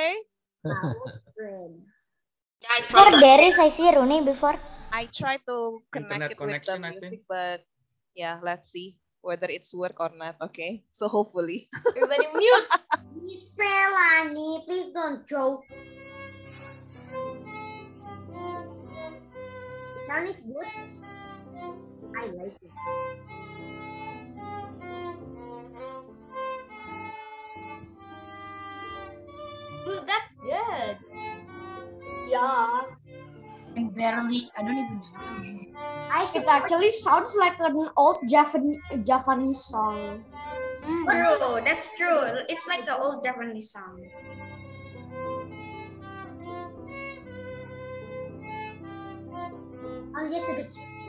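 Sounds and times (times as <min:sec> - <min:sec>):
violin slow melody: 0:06.0 - 0:06.7, 0:15.7 - 0:37.8, 0:38.5 - 0:43.0, 0:44.0 - 0:51.0
piano accompaniment: 0:12.0 - 0:14.4, 0:15.6 - 0:51.0.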